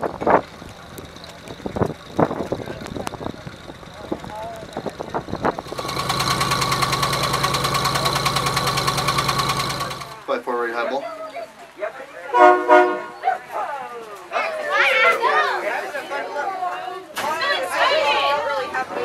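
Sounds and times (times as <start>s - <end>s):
engine running with fast pulsing beat: 0.0s - 10.3s
train wheels knocking and clattering: 1.0s - 10.2s.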